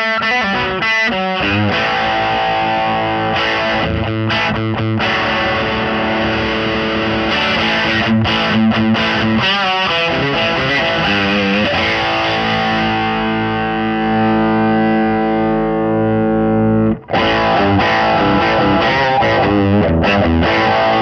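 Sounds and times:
distorted electric guitar: 0.0 - 21.0.

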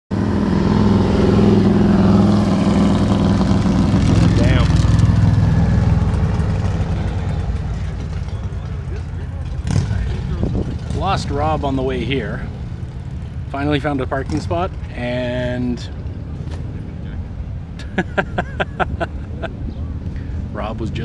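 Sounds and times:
motorcycle engine running: 0.1 - 15.2.

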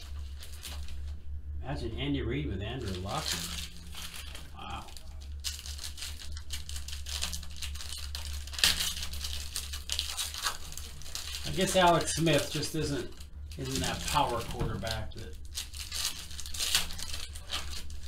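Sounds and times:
foil wrappers crinkling and tearing: 0.0 - 1.2, 2.8 - 18.0.

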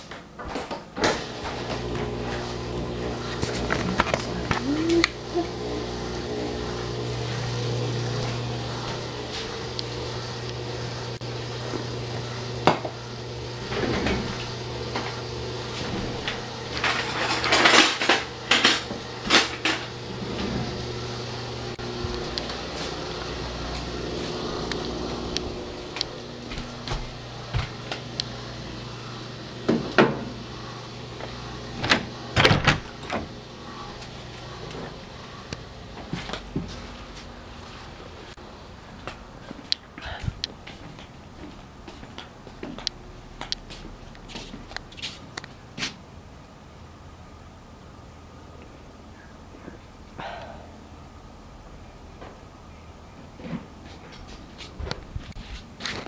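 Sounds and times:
steady low hum: 0.3 - 56.0.

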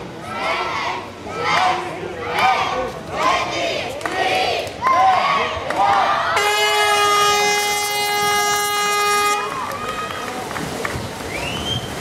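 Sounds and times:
crowd voices: 0.0 - 12.0
air horn long note: 6.4 - 9.7.

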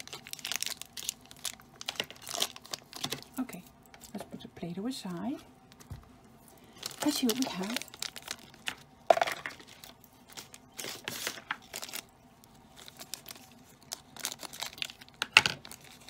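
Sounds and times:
plastic wrapper crinkling and tearing: 0.0 - 4.2, 6.4 - 16.0.

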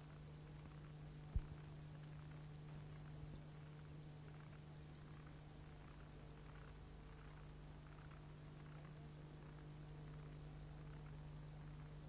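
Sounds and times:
faint tape hiss: 0.0 - 12.0
low hum: 0.6 - 12.0.

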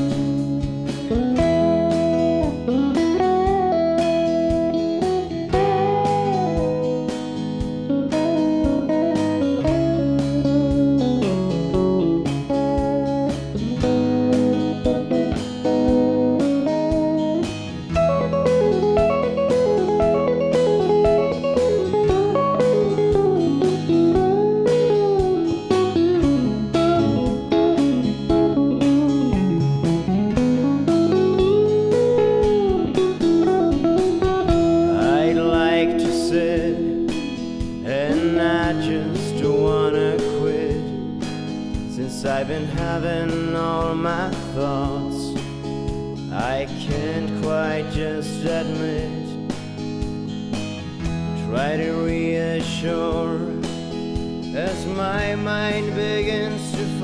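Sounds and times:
electric guitar solo: 0.0 - 41.9
rhythm guitar: 0.0 - 57.0
steady drum beat: 0.0 - 57.0.

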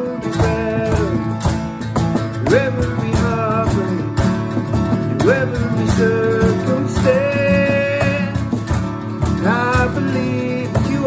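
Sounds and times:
cajon beat: 0.0 - 11.0
man singing: 0.0 - 11.0
strummed acoustic guitar: 0.0 - 11.0.

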